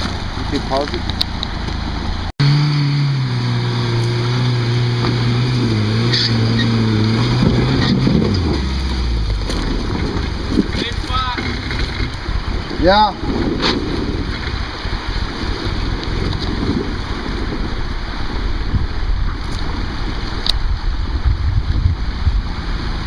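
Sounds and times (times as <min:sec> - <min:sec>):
truck engine running hard: 0:00.0 - 0:12.7.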